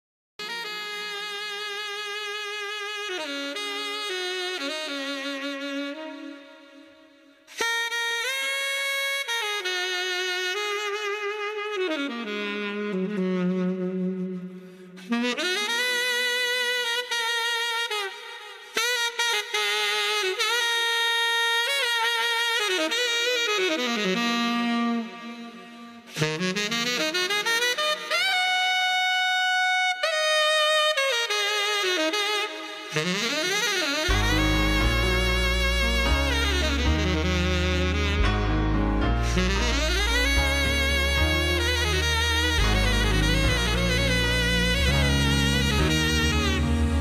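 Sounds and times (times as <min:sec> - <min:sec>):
saxophone playing long notes: 0:00.4 - 0:47.0
solo wind instrument: 0:00.4 - 0:47.0.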